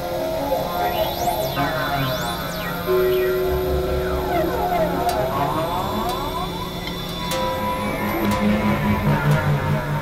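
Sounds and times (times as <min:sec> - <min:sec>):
electronic drone music: 0:00.0 - 0:10.0.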